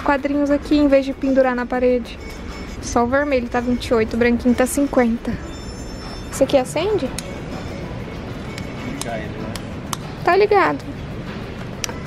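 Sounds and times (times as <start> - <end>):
music playing: 0.0 - 12.0
shop background noise: 0.0 - 12.0.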